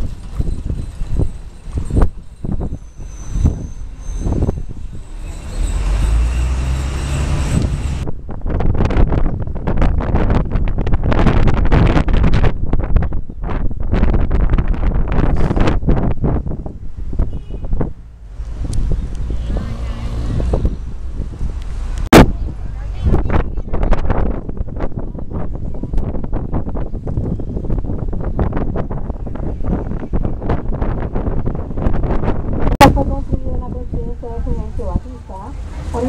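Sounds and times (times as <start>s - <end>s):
low road and engine rumble: 0.0s - 36.0s
wind buffeting microphone: 0.0s - 36.0s.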